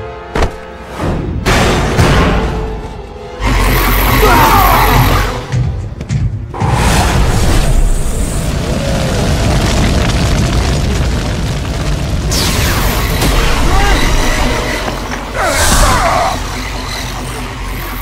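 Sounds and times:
dramatic background music: 0.0 - 8.7, 12.2 - 18.0.

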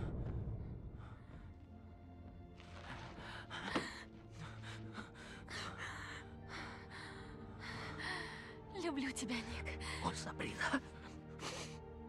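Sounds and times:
soft music score: 0.0 - 12.0
person crying with gasping breaths: 11.2 - 12.0.

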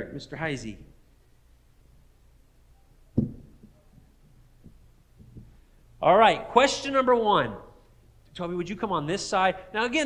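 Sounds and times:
faint low hum: 0.0 - 10.0
microphone handling thumps: 3.2 - 5.6.

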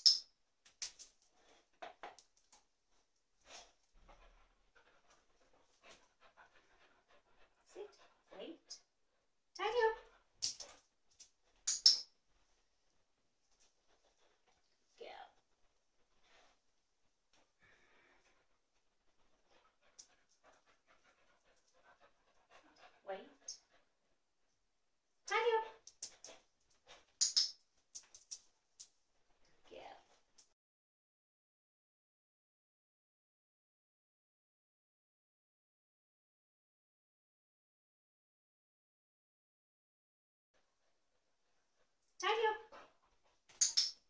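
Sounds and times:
dog panting softly: 3.4 - 9.3, 17.4 - 24.2, 42.7 - 43.5.

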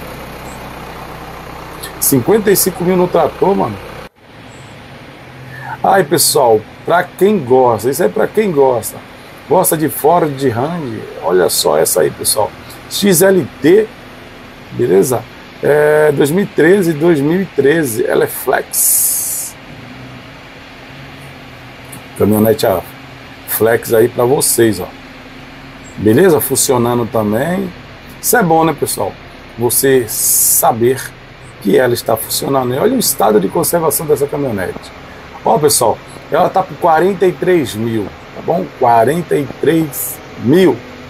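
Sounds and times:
tractor diesel engine idling: 0.0 - 41.0.

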